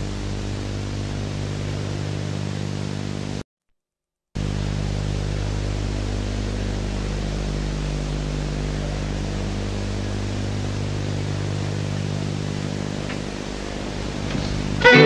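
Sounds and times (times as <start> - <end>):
low electrical hum: 0.0 - 3.4, 4.4 - 15.0.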